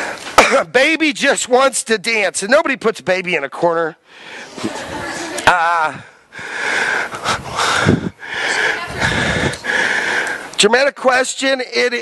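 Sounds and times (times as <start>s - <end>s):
microphone hiss: 0.0s - 12.0s.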